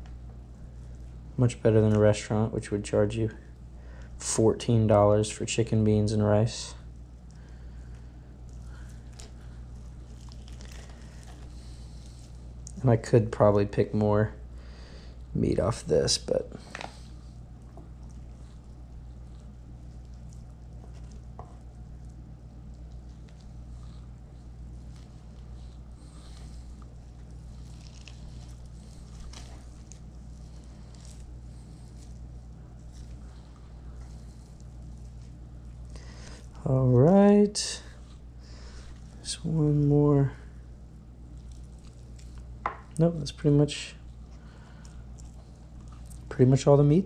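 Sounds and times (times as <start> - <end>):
meat tearing wet squishing: 0.0 - 2.1, 6.8 - 13.1, 16.6 - 36.7, 37.8 - 46.9
steady low hum: 0.0 - 47.0
small crackles of skin: 6.8 - 13.1, 16.6 - 36.7, 37.9 - 39.5, 40.5 - 46.9.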